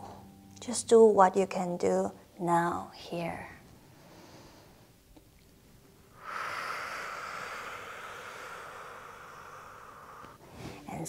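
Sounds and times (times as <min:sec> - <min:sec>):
woman exhaling: 0:06.1 - 0:11.0.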